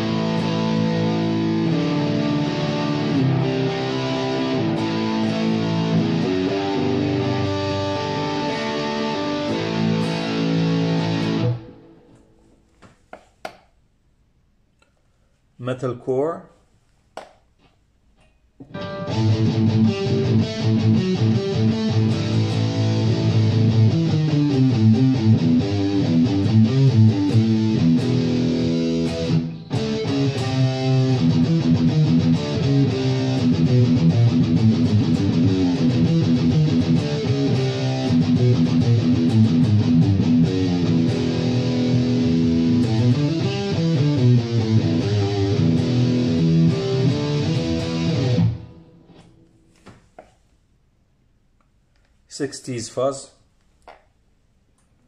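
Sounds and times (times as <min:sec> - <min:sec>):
distorted electric guitar: 0:00.0 - 0:12.3, 0:18.6 - 0:49.4.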